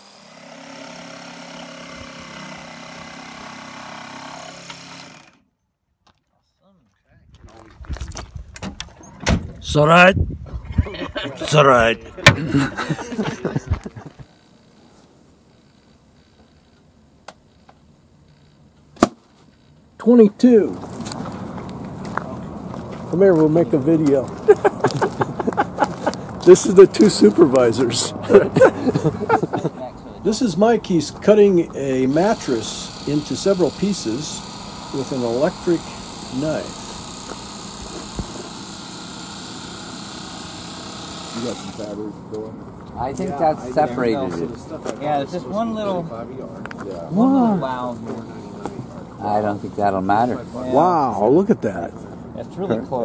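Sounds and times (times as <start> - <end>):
electric knife cutting foam: 0.0 - 5.5, 31.3 - 42.1.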